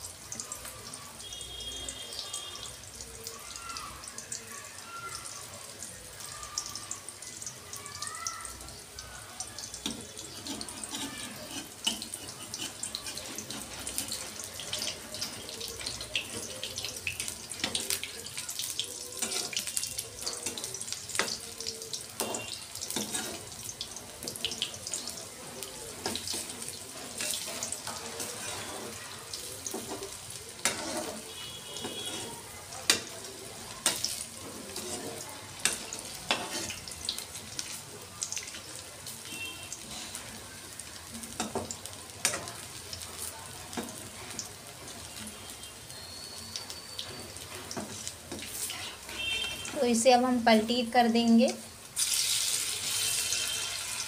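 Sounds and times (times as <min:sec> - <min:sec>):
fritters sizzling in hot oil: 0:00.0 - 0:54.0
oil crackling and popping: 0:06.2 - 0:50.0, 0:51.6 - 0:54.0.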